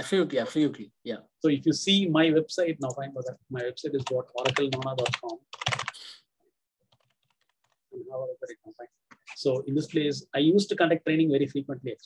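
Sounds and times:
faint keyboard typing: 2.7 - 6.1, 6.8 - 9.5.

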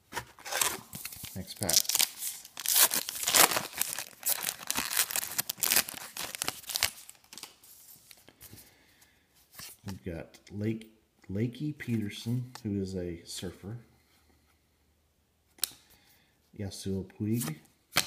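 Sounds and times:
cards rustling: 0.2 - 8.6
wrapper tearing and crinkling: 0.4 - 7.6.

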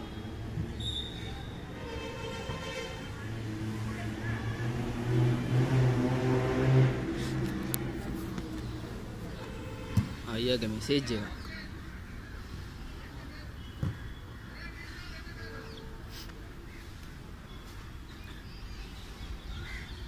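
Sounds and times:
vehicle engine humming: 0.0 - 12.1.

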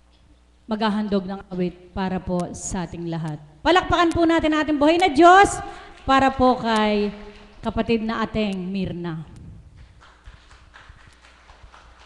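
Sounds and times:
scattered hand claps: 6.0 - 7.8, 9.7 - 12.0.

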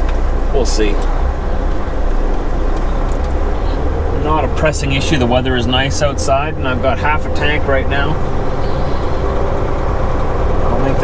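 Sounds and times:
diesel truck engine rumbling: 0.0 - 11.0.

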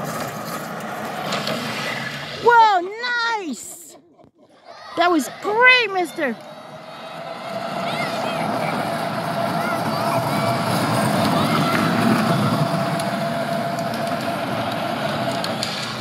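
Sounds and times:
electric motor whining: 5.0 - 16.0.

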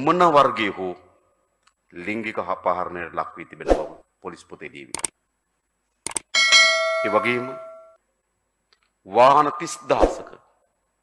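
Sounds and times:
bright bell ding: 6.4 - 8.0.

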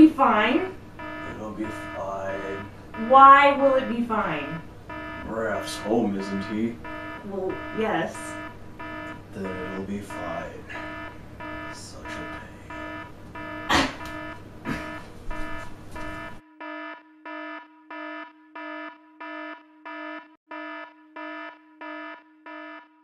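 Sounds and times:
room background noise: 0.0 - 16.4
electronic alarm beeping: 0.0 - 23.0.

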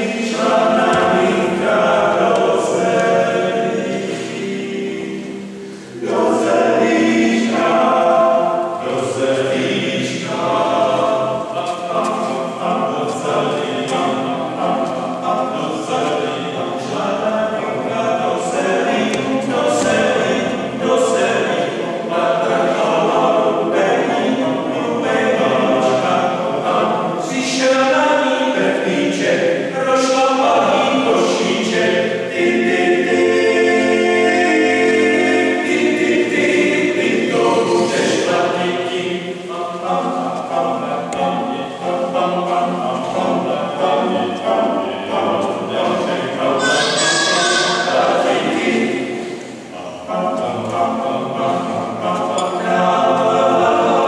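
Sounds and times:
male a cappella singing: 0.0 - 54.0.

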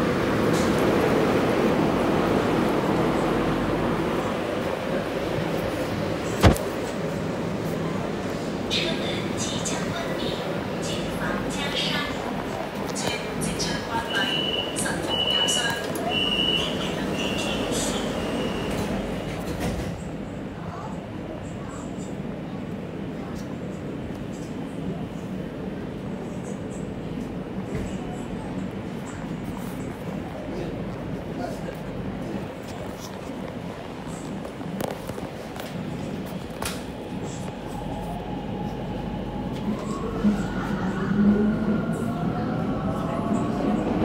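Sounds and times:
train rolling in tunnel: 0.0 - 44.0.

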